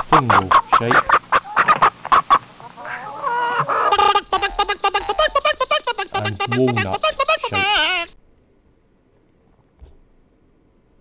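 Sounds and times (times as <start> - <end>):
chicken clucking: 0.0 - 8.1.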